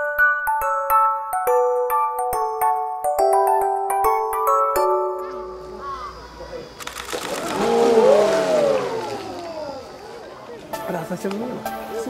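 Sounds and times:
loud water splash: 7.1 - 10.2
long exclamation: 7.4 - 9.9.

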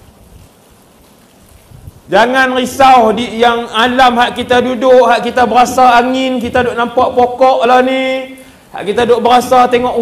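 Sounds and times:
faint room and microphone hiss: 0.0 - 10.0.

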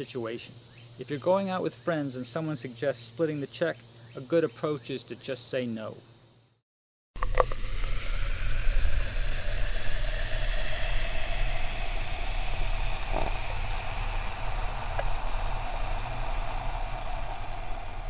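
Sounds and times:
soft drink fizzing in a glass: 7.2 - 18.0.

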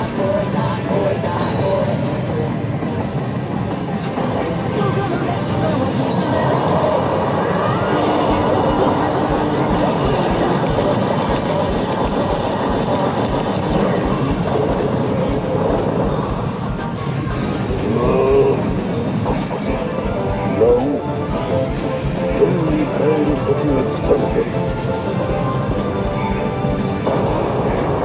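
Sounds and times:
arcade machine sound effects and music: 0.0 - 28.0
arcade machines din: 0.0 - 28.0.

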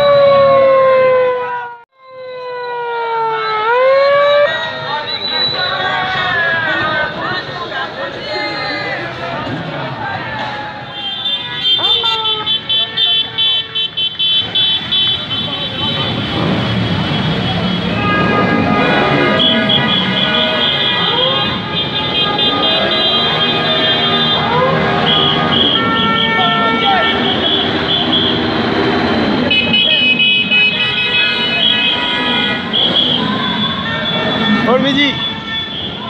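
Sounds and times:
crowd voices: 4.4 - 36.0
motorcycle horns honking: 10.8 - 36.0.

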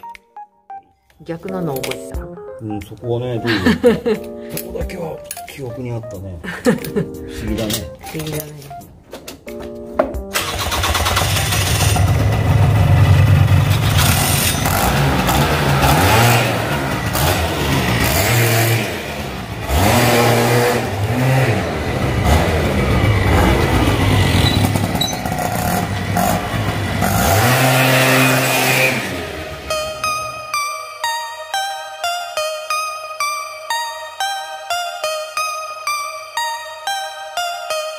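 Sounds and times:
two-stroke engine revving: 10.3 - 30.3.

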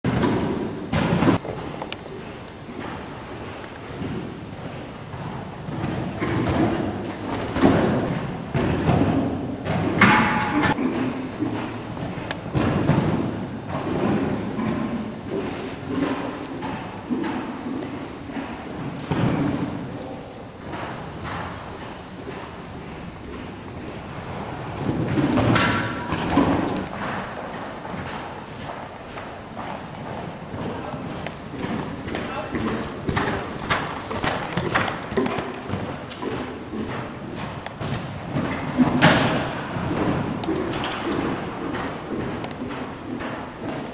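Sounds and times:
horse hooves thudding on sand: 0.1 - 43.9.

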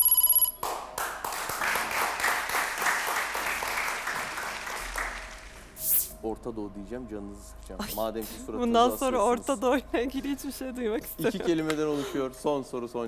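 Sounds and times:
electronic game-show ringing tone: 0.0 - 0.6
audience applause: 0.6 - 5.7.

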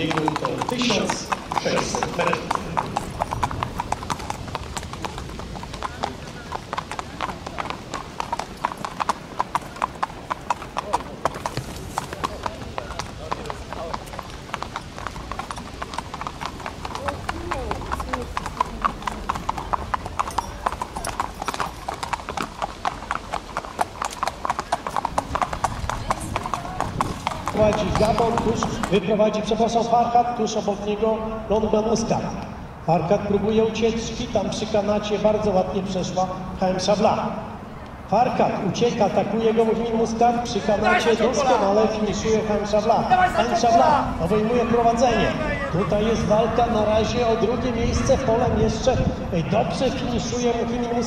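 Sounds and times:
hooves clip-clopping on pavement: 0.0 - 51.0.

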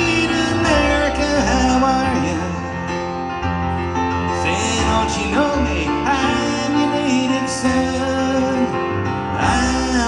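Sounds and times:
person singing: 0.0 - 2.8, 4.2 - 10.0
grand piano playing: 0.0 - 10.0.

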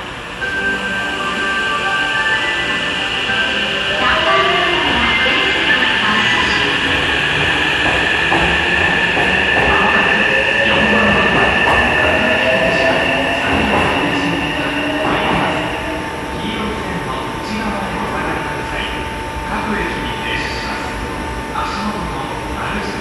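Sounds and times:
train wheels clacking over rail joints: 6.9 - 12.2.

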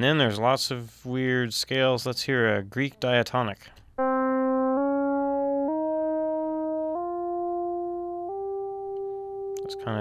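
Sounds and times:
synthesizer tone stepping up: 4.0 - 10.0.

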